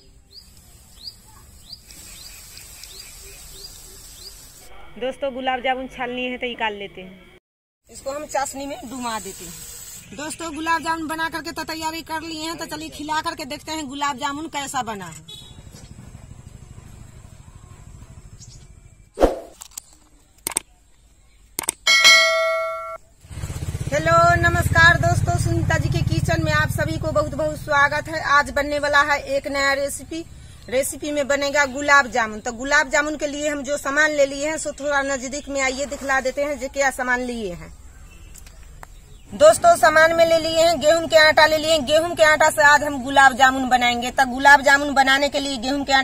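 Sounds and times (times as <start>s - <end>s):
bird chirping: 0.0s - 4.6s, 37.2s - 39.7s
dough balls sizzling in hot oil: 0.2s - 4.6s, 8.4s - 10.9s
whoosh: 19.2s - 19.6s
quick clicks: 19.2s - 20.7s, 21.6s - 21.9s
bell chime: 21.9s - 23.0s.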